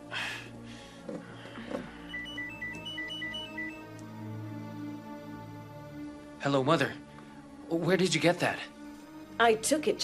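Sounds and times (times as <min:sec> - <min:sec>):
soft background music: 0:00.0 - 0:10.0
phone ringtone beeps: 0:02.0 - 0:04.0.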